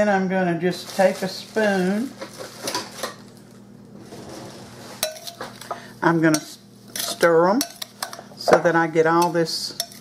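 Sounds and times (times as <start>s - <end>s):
metal spoon clinking glass bowl: 5.0s - 5.4s, 6.3s - 8.2s.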